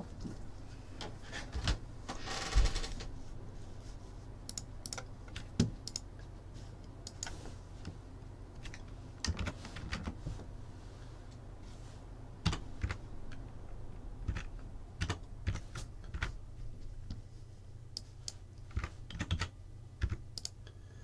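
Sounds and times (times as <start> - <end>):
computer keyboard typing: 4.5 - 6.1, 8.6 - 10.2, 12.4 - 13.4, 14.2 - 16.4, 18.2 - 20.6
clicks: 20.0 - 20.6.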